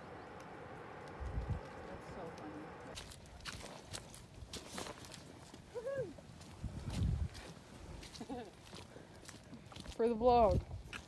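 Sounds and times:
footsteps on muddy dirt trail: 0:00.0 - 0:11.0.

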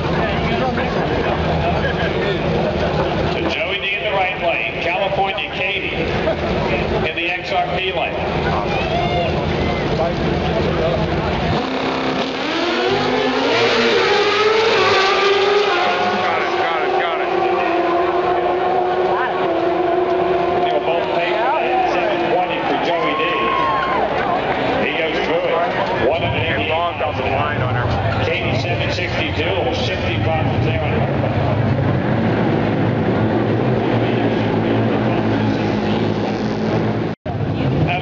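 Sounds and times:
racing motorcycles accelerating: 0:00.0 - 0:23.7, 0:24.3 - 0:38.0.

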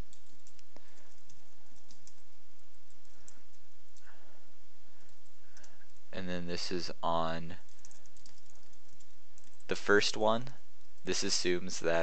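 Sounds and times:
computer keyboard typing: 0:00.0 - 0:02.3, 0:02.9 - 0:03.5, 0:05.1 - 0:06.0, 0:07.7 - 0:09.7.

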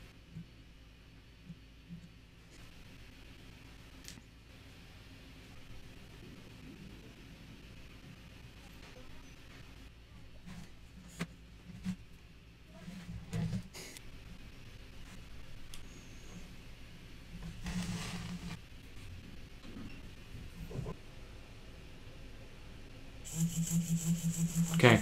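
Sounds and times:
servo whirring in pulses: 0:23.3 - 0:25.0.

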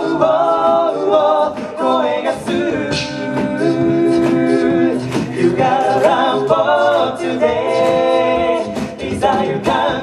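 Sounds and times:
male a cappella singing: 0:00.0 - 0:10.0.

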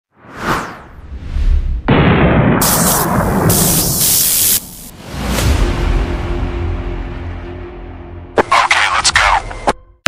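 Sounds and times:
whoosh: 0:00.2 - 0:05.7.

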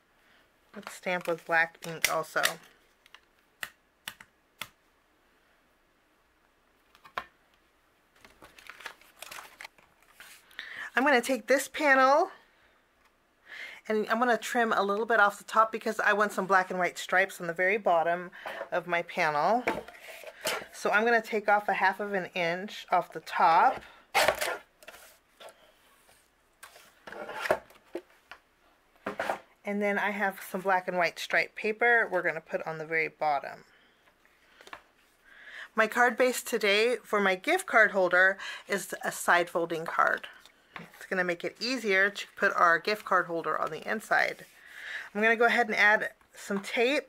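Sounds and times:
cardstock rustling: 0:08.2 - 0:10.5
paper and card scraping: 0:24.2 - 0:25.2, 0:26.1 - 0:27.6.

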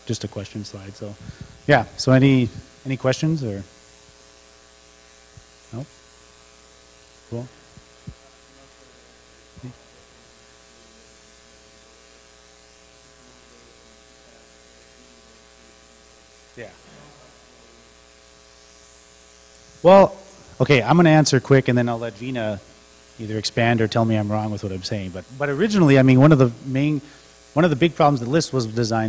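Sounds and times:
electrical mains hum: 0:00.0 - 0:29.0.

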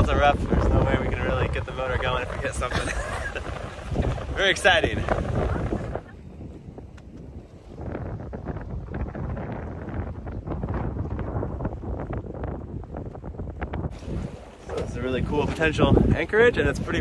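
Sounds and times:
wind buffeting microphone: 0:00.0 - 0:17.0
water splashing: 0:01.1 - 0:07.9, 0:13.8 - 0:17.0.

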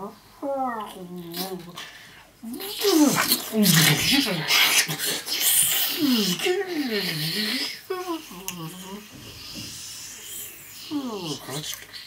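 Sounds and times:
breathy hiss: 0:01.7 - 0:12.0.

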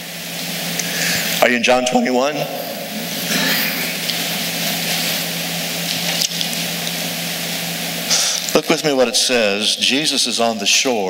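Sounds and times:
pages being leafed through: 0:04.1 - 0:07.0.

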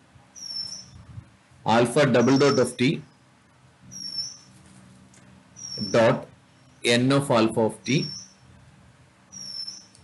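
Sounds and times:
stylus squeaking on tablet screen: 0:00.4 - 0:01.0, 0:02.1 - 0:02.8, 0:03.9 - 0:04.6, 0:05.6 - 0:06.9, 0:07.9 - 0:08.4, 0:09.3 - 0:10.0.

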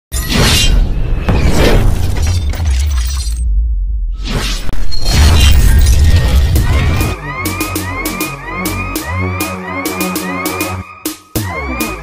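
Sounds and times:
glass-shattering effect: 0:00.1 - 0:03.5, 0:04.3 - 0:07.1
intro music with heavy bass: 0:06.4 - 0:12.0.

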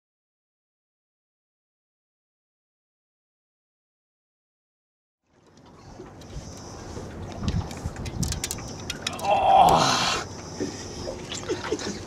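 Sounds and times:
water splashing against a boat: 0:05.3 - 0:12.0.

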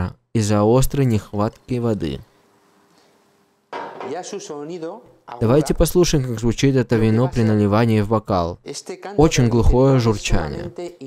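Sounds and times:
man speaking: 0:00.0 - 0:02.3, 0:03.8 - 0:11.0
faint steady hum: 0:00.1 - 0:11.0.

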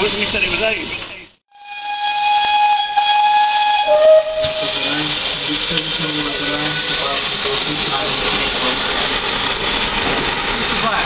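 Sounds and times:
steam locomotive whistle: 0:01.5 - 0:07.7
steam hissing: 0:01.6 - 0:11.0.

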